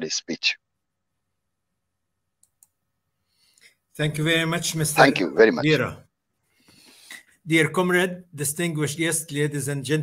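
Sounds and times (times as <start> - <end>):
man speaking: 0.0 - 0.6, 3.9 - 6.1, 7.4 - 10.0.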